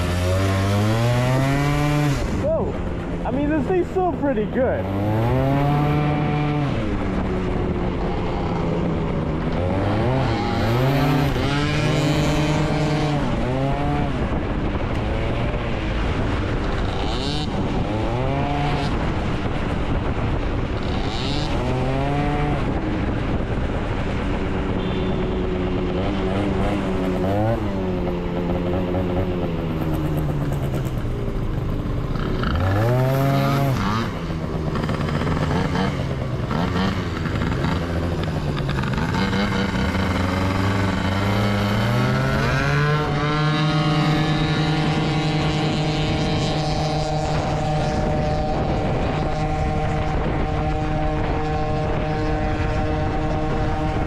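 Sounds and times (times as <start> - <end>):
scooter engine revving: 0.0 - 19.4, 24.4 - 54.0
wind on microphone: 0.0 - 54.0.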